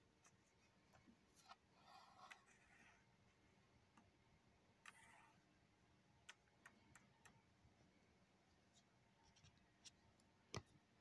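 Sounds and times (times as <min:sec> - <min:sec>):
faint sharp clicks and taps: 0:06.2 - 0:07.4.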